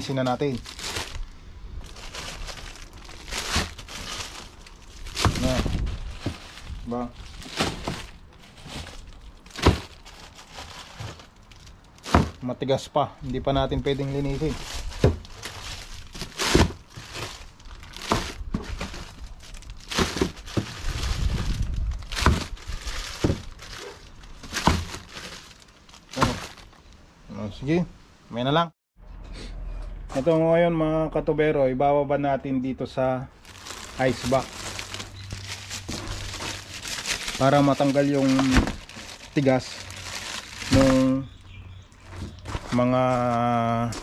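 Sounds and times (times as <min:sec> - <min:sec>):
plastic bags crinkling: 0:00.0 - 0:12.7, 0:13.3 - 0:27.0, 0:33.4 - 0:41.4, 0:42.0 - 0:44.0
frozen fish knocking: 0:12.0 - 0:12.4, 0:22.1 - 0:23.8.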